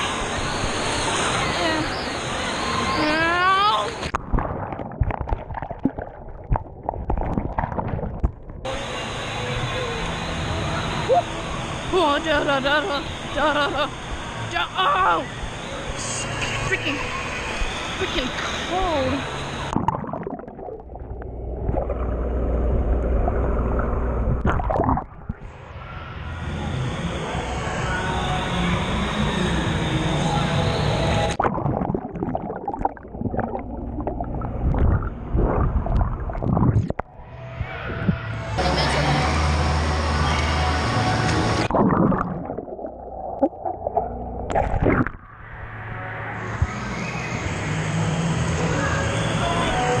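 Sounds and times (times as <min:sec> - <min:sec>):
indoor pool hubbub: 0:00.0 - 0:50.0
splashing pool water: 0:03.3 - 0:08.7, 0:41.2 - 0:45.3
muffled underwater gurgling: 0:04.0 - 0:08.7, 0:18.8 - 0:25.5, 0:31.2 - 0:38.3, 0:41.6 - 0:45.4.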